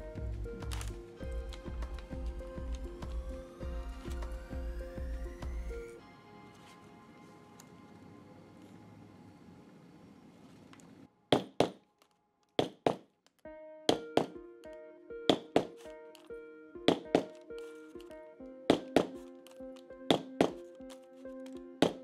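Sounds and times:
background music with held notes: 0:00.0 - 0:09.8, 0:13.5 - 0:22.0.

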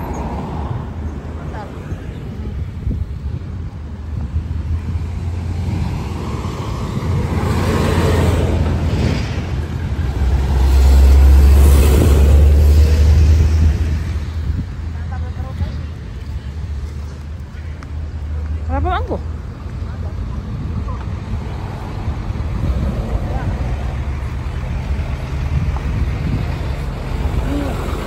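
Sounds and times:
road traffic passing: 0:00.0 - 0:28.0
truck engine rumble: 0:00.0 - 0:28.0.

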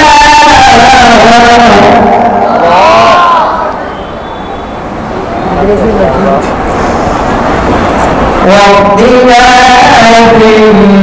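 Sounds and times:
man reciting through pa: 0:00.0 - 0:03.1, 0:08.4 - 0:11.0
hall noise: 0:00.0 - 0:11.0.

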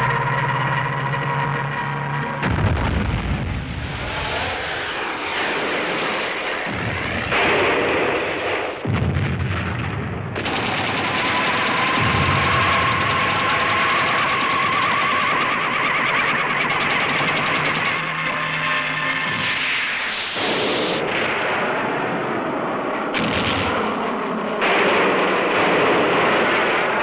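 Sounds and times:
anti-aircraft gunfire: 0:02.4 - 0:27.0.

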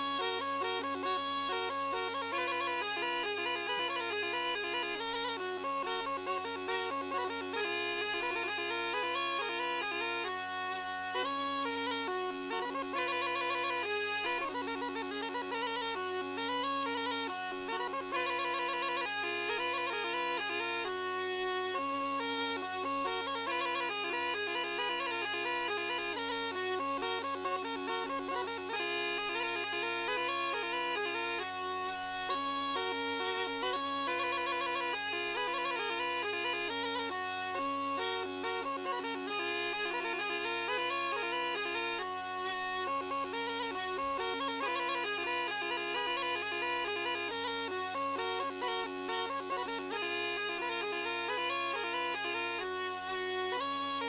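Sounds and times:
folk reed melody over drone: 0:00.0 - 0:53.9.

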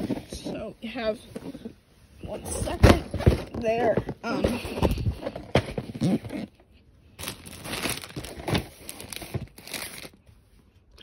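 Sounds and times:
cardboard boxes being handled: 0:00.0 - 0:10.2
plastic bag crinkling: 0:07.2 - 0:10.2.

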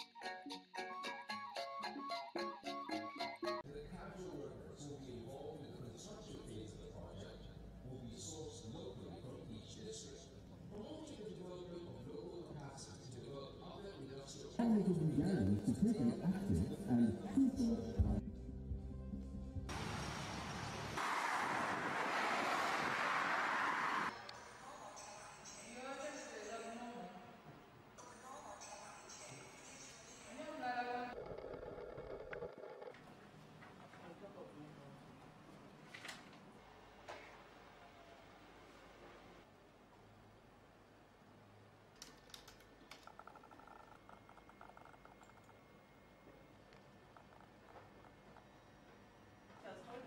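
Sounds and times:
background music with low tones: 0:14.6 - 0:19.7
faint keyboard typing: 0:42.0 - 0:45.7.

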